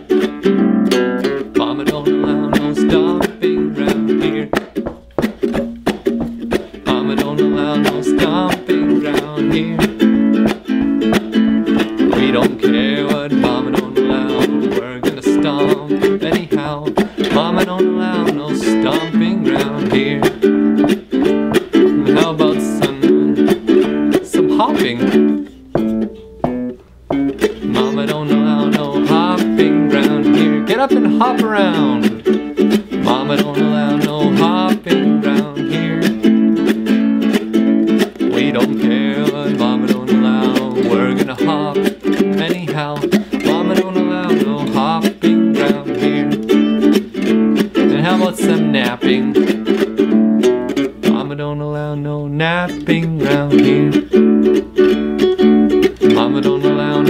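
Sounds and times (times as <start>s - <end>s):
ukulele strumming: 0.0s - 57.0s.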